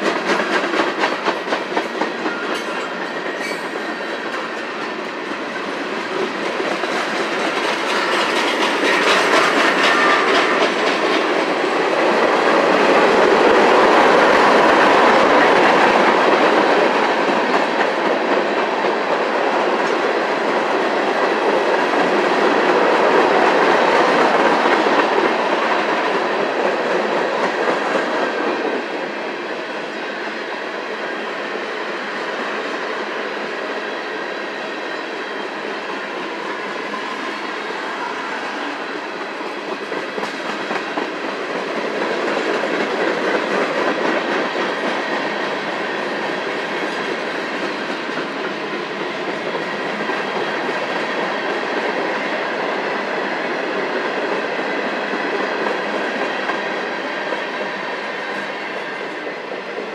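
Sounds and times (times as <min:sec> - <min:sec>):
freight train rolling past: 0:00.0 - 0:59.9.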